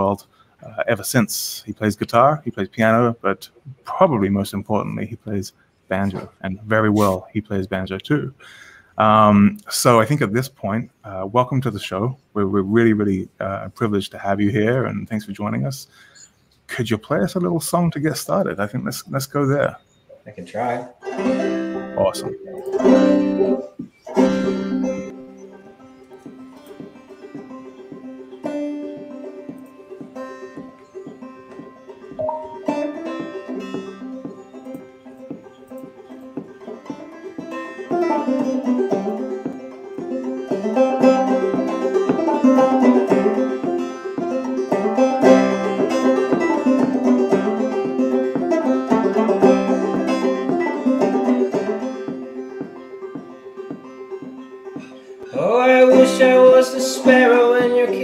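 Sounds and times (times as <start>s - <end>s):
banjo picking: 0.0s - 20.2s, 20.9s - 58.0s.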